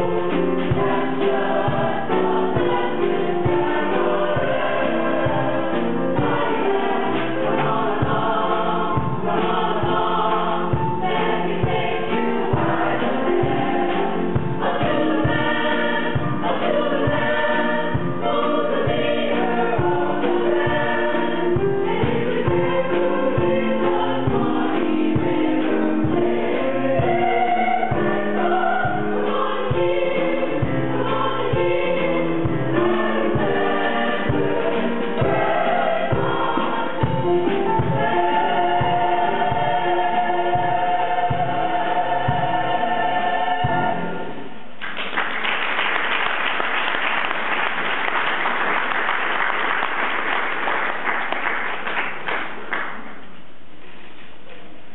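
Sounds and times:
mixed choir singing ragtime: 0.0 - 44.6.

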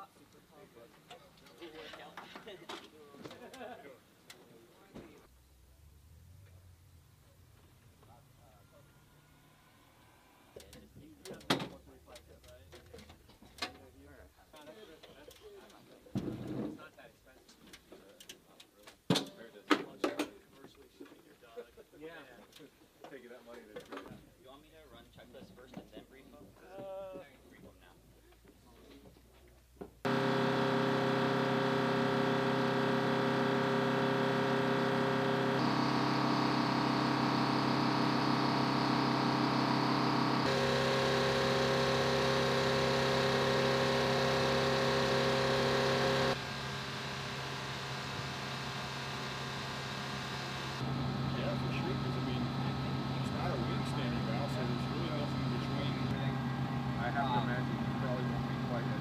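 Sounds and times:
jet engines whining and humming: 30.1 - 53.8.

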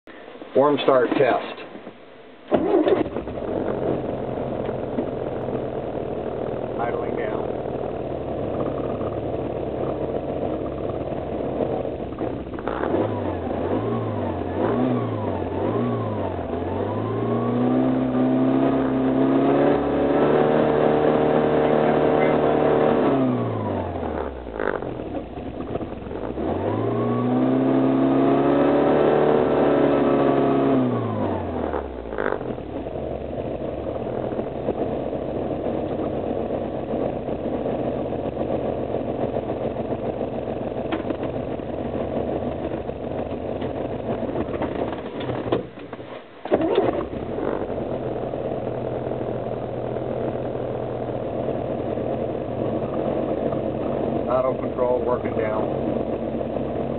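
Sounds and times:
engine revving and idling: 2.4 - 56.9.

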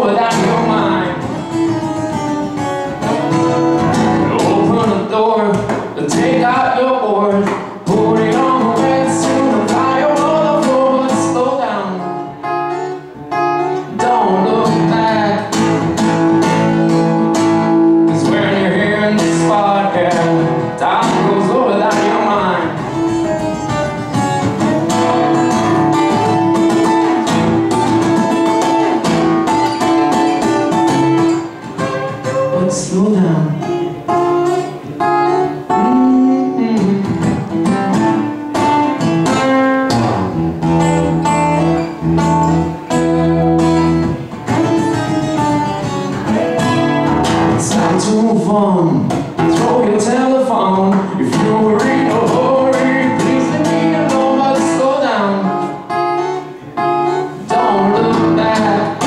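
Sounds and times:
man singing: 0.0 - 1.7, 3.0 - 12.5, 13.6 - 16.7, 17.9 - 23.3, 24.6 - 34.0, 35.0 - 39.6, 46.2 - 55.9, 56.8 - 59.0
acoustic guitar strumming: 0.0 - 59.0.

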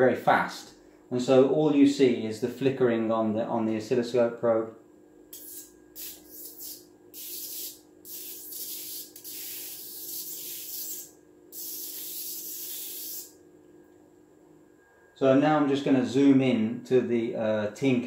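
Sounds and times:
electric sparks sizzling: 5.4 - 13.4.

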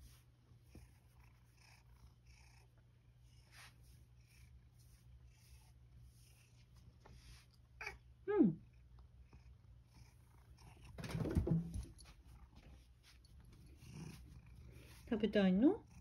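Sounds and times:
bump and rustle of cat jumping: 10.9 - 12.2.

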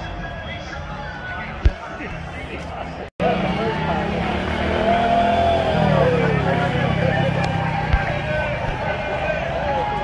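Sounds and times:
crowd voices and chatter: 0.0 - 10.0.

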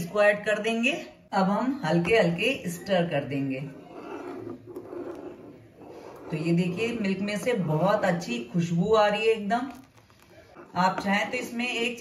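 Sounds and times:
milk sloshing: 4.0 - 12.0.

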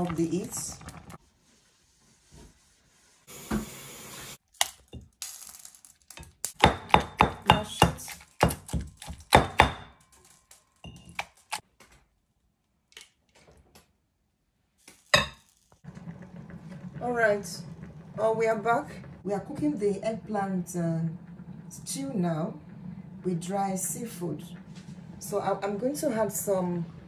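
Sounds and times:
pestle pounding in stone mortar: 6.6 - 9.9.

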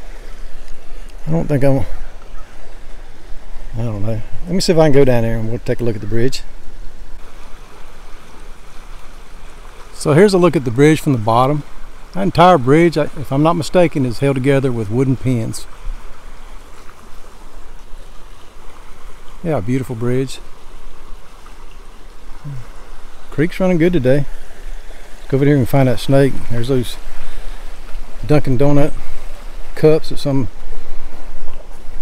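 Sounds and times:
creek water flowing over rocks: 0.0 - 32.0.

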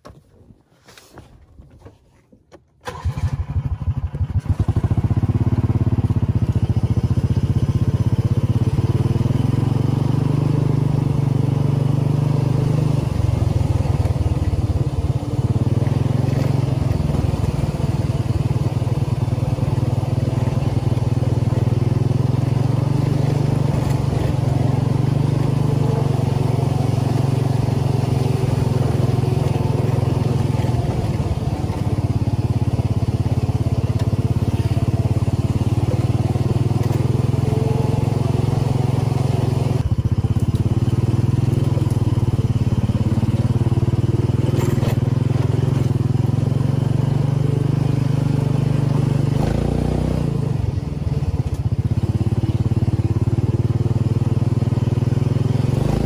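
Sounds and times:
buggy engine running under load: 2.8 - 56.0.

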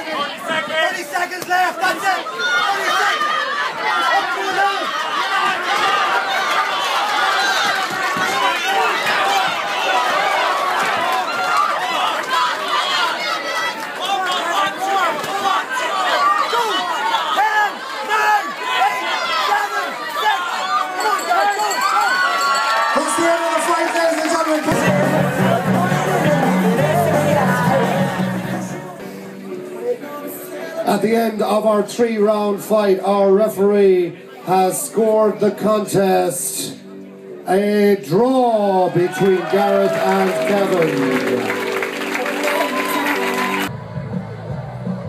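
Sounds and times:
crowd shouting and cheering: 0.0 - 45.0
music: 24.5 - 30.9, 36.3 - 38.2, 39.2 - 45.0.

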